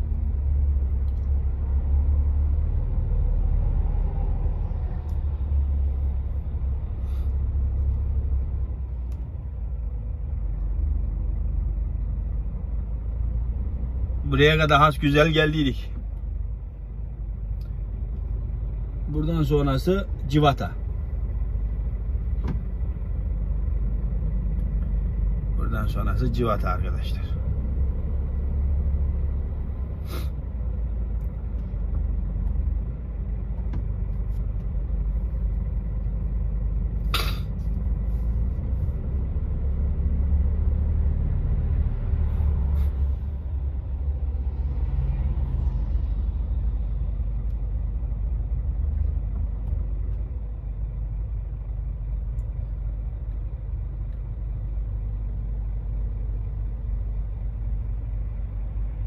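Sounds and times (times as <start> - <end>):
vehicle engine idling: 0.0 - 59.0.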